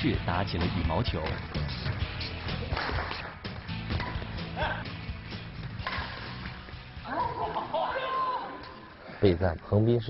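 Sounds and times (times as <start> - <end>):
background music: 0.0 - 10.0
rackets hitting shuttlecock: 2.6 - 4.6, 5.7 - 6.7.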